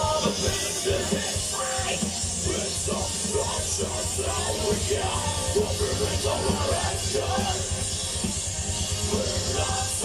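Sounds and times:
distorted electric guitars: 0.0s - 10.0s
fast drumming: 0.0s - 10.0s.

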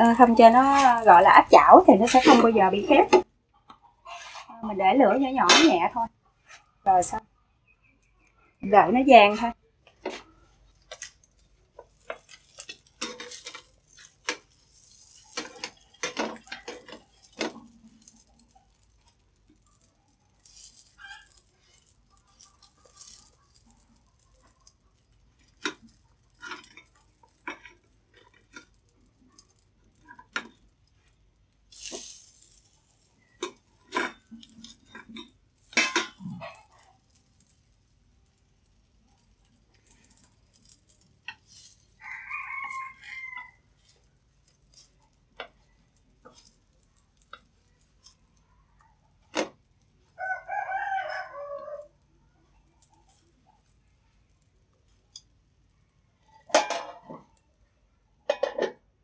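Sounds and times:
utensils scraping a frying pan: 0.0s - 3.3s, 4.0s - 4.6s, 10.0s - 48.2s
rooster crowing: 42.0s - 43.6s, 50.2s - 52.0s.

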